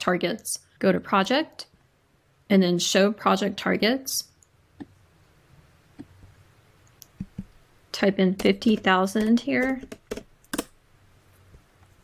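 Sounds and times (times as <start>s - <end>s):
computer keyboard key clicks: 8.4s - 10.7s.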